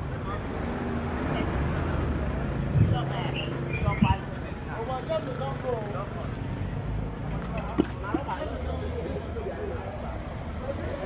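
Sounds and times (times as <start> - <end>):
low traffic rumble: 0.0 - 11.0
people talking: 2.7 - 6.4, 7.3 - 11.0.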